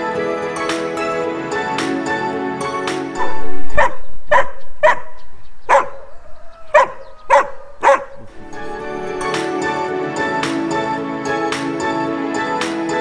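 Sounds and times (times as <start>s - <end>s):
background music: 0.0s - 13.0s
dog barking: 3.2s - 8.3s.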